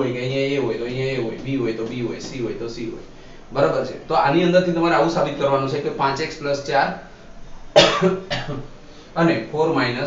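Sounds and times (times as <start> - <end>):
man coughing: 7.8 - 8.7.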